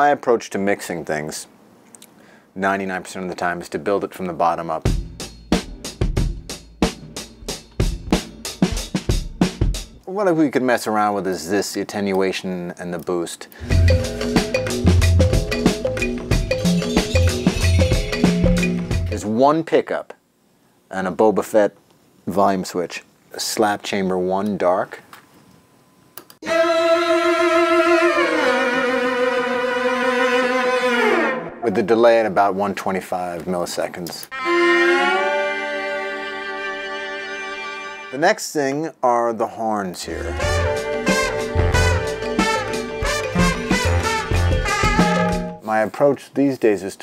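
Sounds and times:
snare and cymbal strokes: 4.9s - 10.0s, 13.6s - 19.2s, 40.2s - 45.7s.

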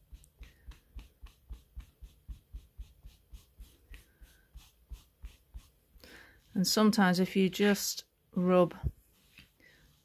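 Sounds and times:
velvet brushing scrape: 0.0s - 7.0s, 9.0s - 10.0s.

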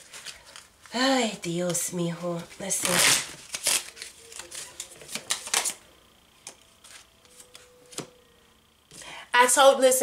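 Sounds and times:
cards being shuffled: 1.6s - 5.8s, 6.4s - 8.1s.

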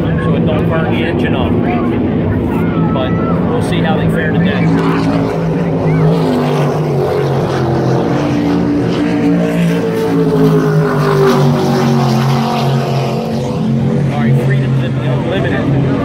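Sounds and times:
racing boat engines droning: 0.0s - 16.0s.

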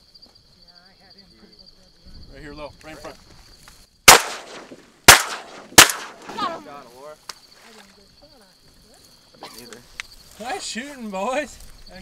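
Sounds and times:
shotgun shots: 4.1s - 6.6s.

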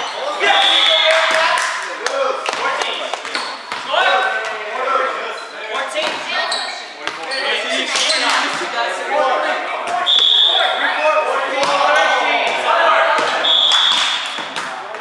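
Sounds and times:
players calling out: 0.0s - 14.9s
volleyball hits and bounces: 11.5s - 15.0s.

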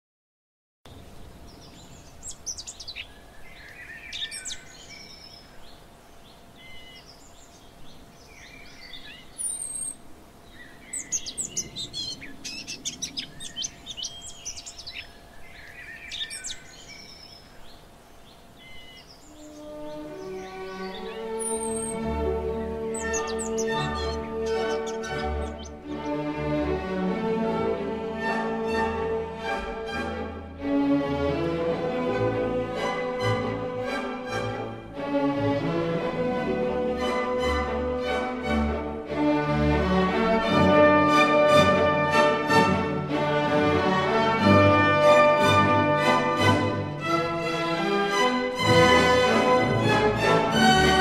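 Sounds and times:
small birds chirping: 0.9s - 26.3s
music with sustained strings: 12.7s - 51.0s.

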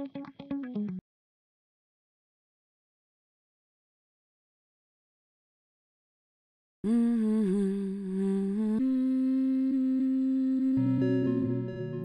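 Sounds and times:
hummed vocal: 6.9s - 12.0s
low synthesizer: 10.3s - 12.0s.

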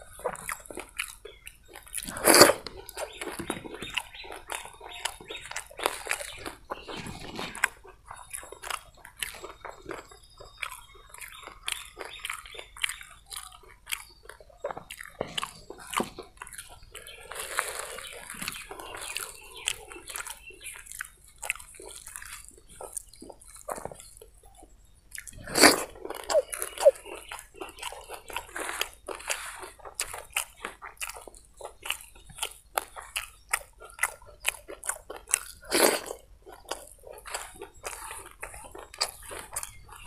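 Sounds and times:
chewing and crunching: 0.0s - 40.0s
fingers squishing food: 0.0s - 40.0s.

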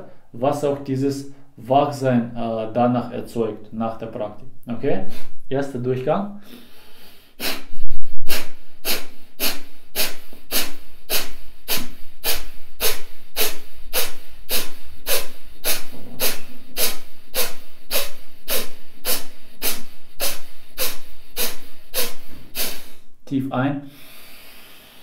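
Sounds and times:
forceful nasal exhalations: 5.0s - 5.5s, 6.4s - 23.2s, 23.8s - 25.0s.

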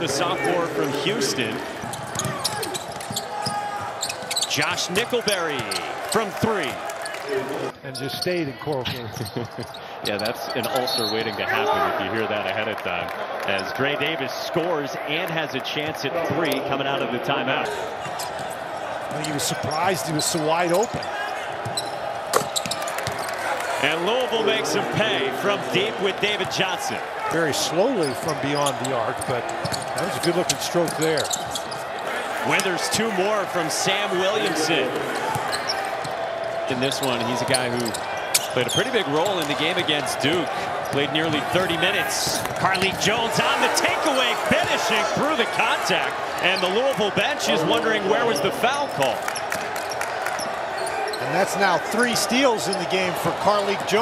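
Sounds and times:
shoes squeaking: 0.9s - 6.2s, 17.6s - 23.6s, 27.9s - 32.9s, 34.1s - 53.1s
basketball bouncing: 1.7s - 5.7s, 20.8s - 23.4s, 40.6s - 43.4s.

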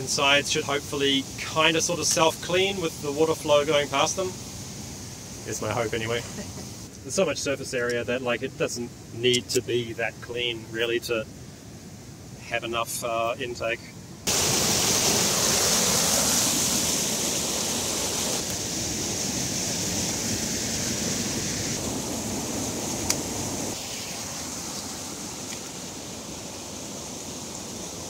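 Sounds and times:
stream water rushing: 14.2s - 28.0s.

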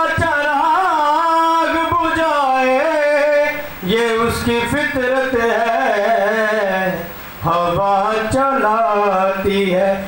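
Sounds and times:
man singing devotional poetry: 0.0s - 10.0s.

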